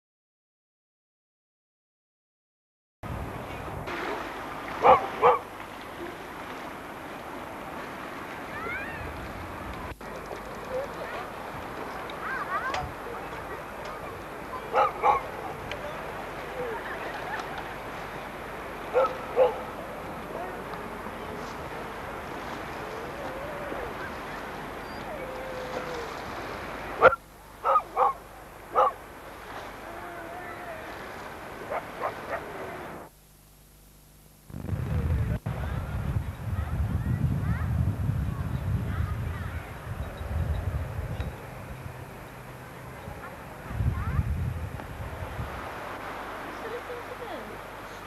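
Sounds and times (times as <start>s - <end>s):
wind: 3.0s - 48.0s
sea: 3.1s - 48.0s
dog barking: 4.8s - 5.5s, 14.7s - 15.6s, 18.9s - 19.7s, 27.0s - 29.0s, 31.7s - 32.5s.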